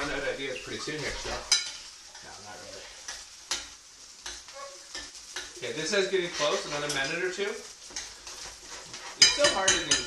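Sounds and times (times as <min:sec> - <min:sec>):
fish sizzling in a skillet: 0:00.0 - 0:10.0
spoon scraping a pan: 0:00.0 - 0:10.0.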